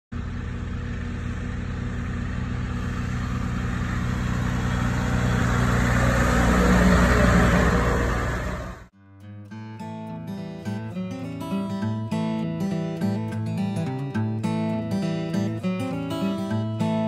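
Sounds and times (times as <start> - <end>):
tractor diesel engine passing: 0.1 - 8.9.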